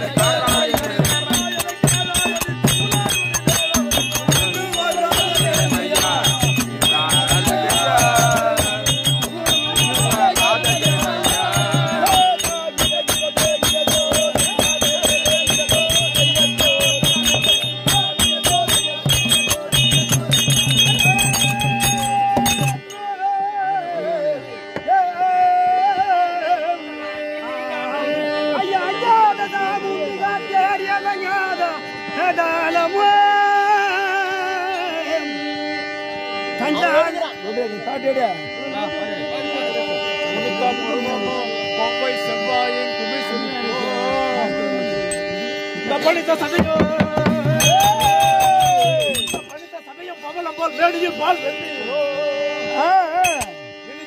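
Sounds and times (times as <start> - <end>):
steady drone: 0.0 - 22.9
fast dense percussion: 0.0 - 23.0, 46.0 - 49.6
wavering melody: 0.0 - 54.0.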